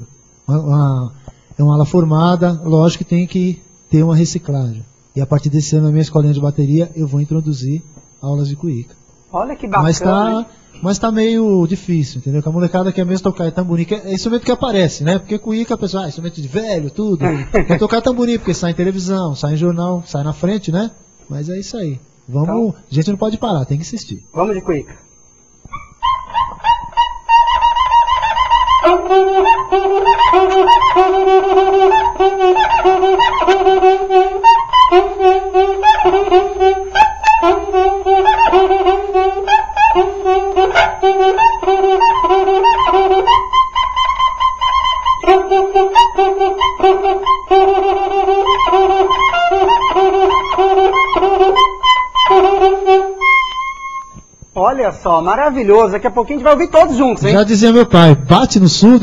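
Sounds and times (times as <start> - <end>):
friction drum crying notes: 25.8 - 55.8.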